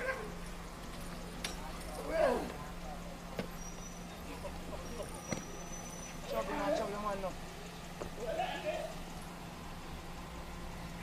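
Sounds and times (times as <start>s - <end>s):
low street hum: 0.0s - 11.0s
person shouting: 8.2s - 8.9s.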